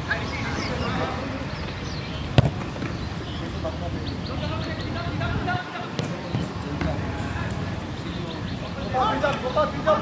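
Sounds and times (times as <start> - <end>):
voices calling out: 0.0 - 10.0
football being kicked: 2.3 - 3.0.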